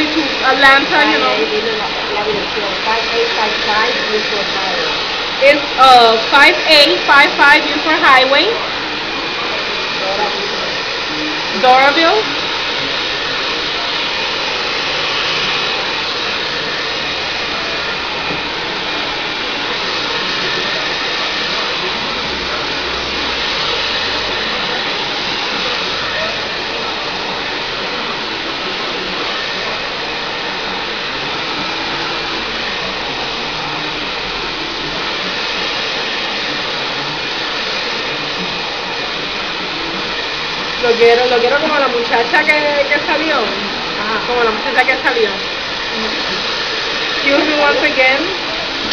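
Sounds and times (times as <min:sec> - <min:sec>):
hair dryer running: 0:00.0 - 0:48.9.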